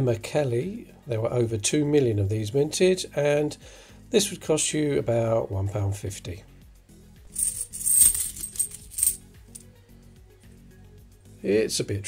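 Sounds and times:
soft background music: 0.0 - 12.0
coins clinking in a cloth bag: 7.3 - 9.6.

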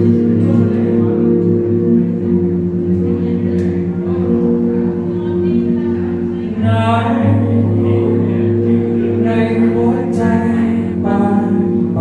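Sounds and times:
electric guitar slow chords: 0.0 - 12.0.

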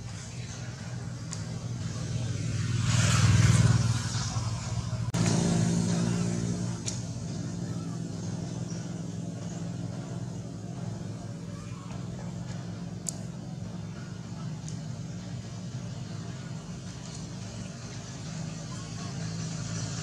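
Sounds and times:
traffic passing on road: 0.0 - 20.0.

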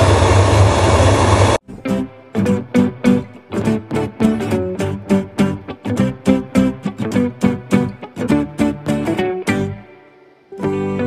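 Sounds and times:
electric kettle heating water: 0.0 - 1.6
acoustic guitar music: 1.6 - 11.0.

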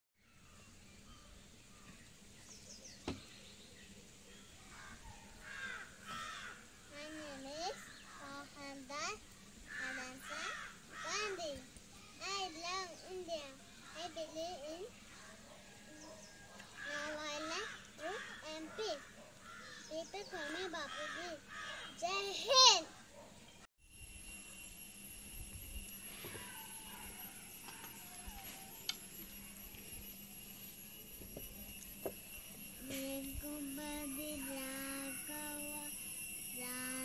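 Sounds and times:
young child speaking: 6.9 - 9.2, 9.8 - 11.6, 12.2 - 14.9, 16.8 - 19.1, 19.8 - 22.9
faint steady hum: 23.9 - 37.0.

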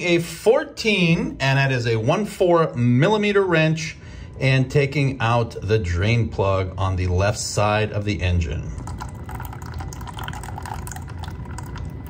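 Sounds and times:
oil pouring into a pan: 8.8 - 12.0.

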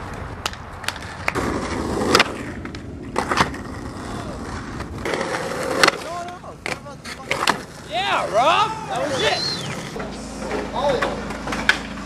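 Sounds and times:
skateboard clacks: 0.0 - 7.9
skateboard wheels rolling on pavement: 0.0 - 12.0.

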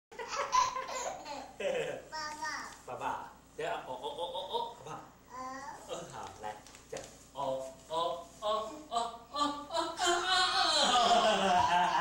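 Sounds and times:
baby laughing: 0.2 - 1.6.

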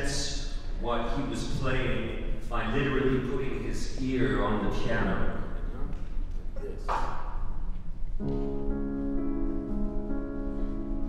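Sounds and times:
man talking into microphone: 0.0 - 5.9.

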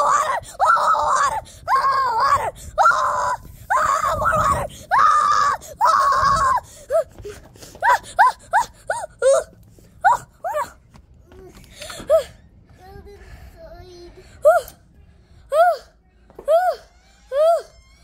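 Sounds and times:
child screaming: 0.0 - 7.1, 16.5 - 17.8.

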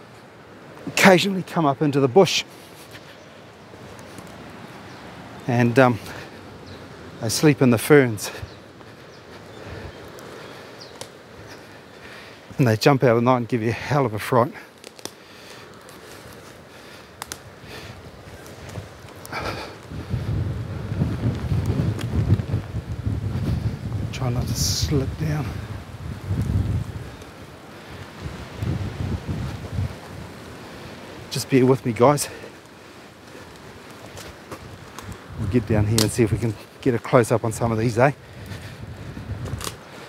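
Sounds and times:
rustling through wet undergrowth: 0.0 - 40.0
faint footsteps: 2.5 - 5.4, 8.3 - 12.7, 14.6 - 24.2, 32.2 - 40.0
wind buffeting microphone: 16.1 - 40.0.

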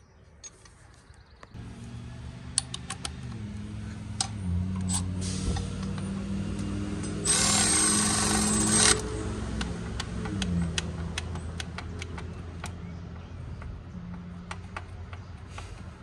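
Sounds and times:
electric ratchet spinning bolt: 6.6 - 10.6.

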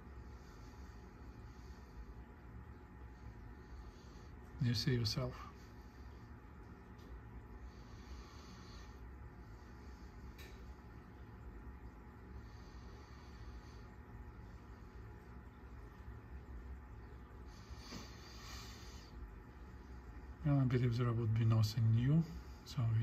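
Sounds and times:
faint low hum: 0.0 - 23.0.

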